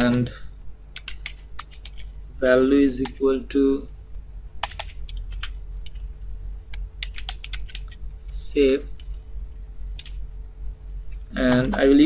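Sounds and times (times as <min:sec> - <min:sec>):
computer keyboard keys clicking: 0:00.9 - 0:02.1, 0:04.6 - 0:06.0, 0:06.7 - 0:08.0, 0:09.9 - 0:10.2, 0:11.4 - 0:12.0.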